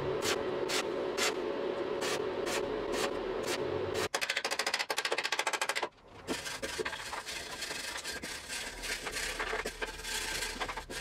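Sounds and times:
fast run of clicks: 4.2s - 5.9s.

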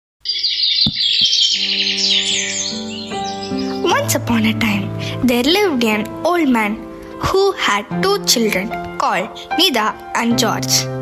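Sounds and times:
birds chirping: 0.2s - 5.0s.

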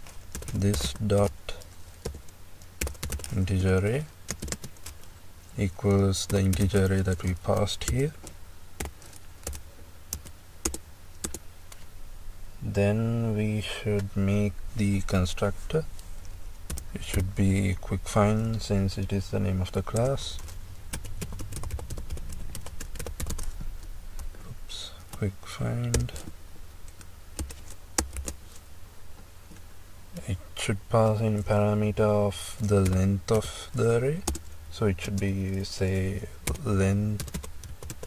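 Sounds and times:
computer keyboard keystrokes: 2.8s - 3.3s.

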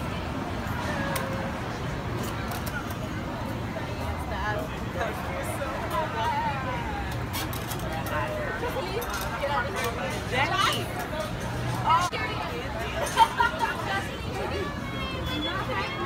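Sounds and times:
background chatter: 0.0s - 16.0s.

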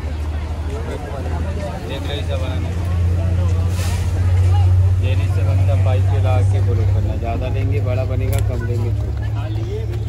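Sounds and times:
motor vehicle engine drone: 0.0s - 10.0s
people talking: 0.0s - 10.0s.

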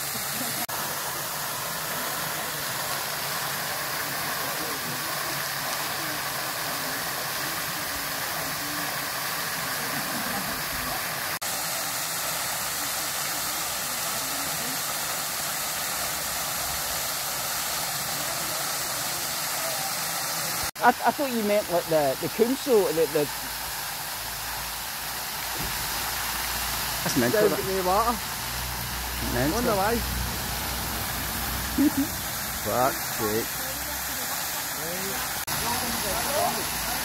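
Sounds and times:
water jetting from burst pipe: 0.0s - 37.0s.

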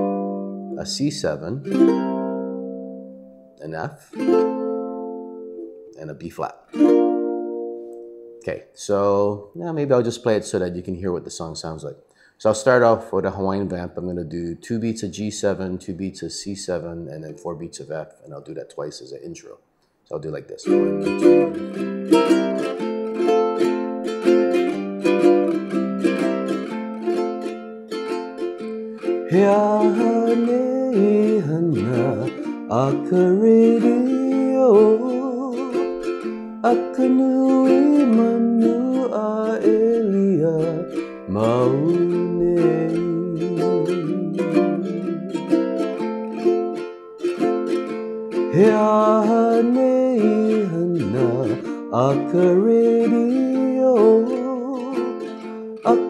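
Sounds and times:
ukulele strumming: 0.0s - 8.6s, 20.6s - 56.0s
man singing: 29.2s - 45.5s, 48.5s - 56.0s.

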